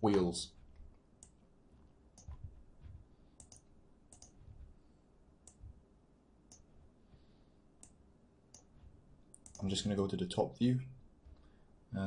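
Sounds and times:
computer mouse clicks: 0:00.1 - 0:01.4, 0:02.2 - 0:04.7, 0:05.4 - 0:05.8, 0:06.5 - 0:06.7, 0:07.8 - 0:09.8.

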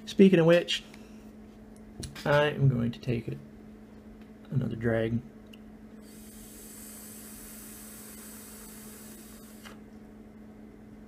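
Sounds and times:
low steady hum: 0:00.0 - 0:11.0
vaporiser coil hissing: 0:06.0 - 0:09.8.

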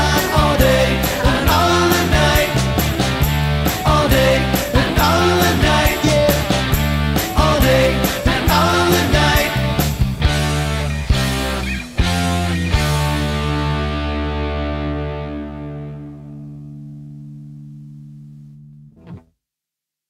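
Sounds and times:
distorted electric guitar chords: 0:00.0 - 0:19.2.

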